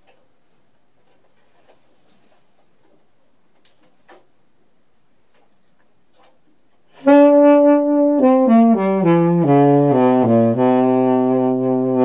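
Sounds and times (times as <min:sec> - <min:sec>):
saxophone playing: 0:06.9 - 0:12.0.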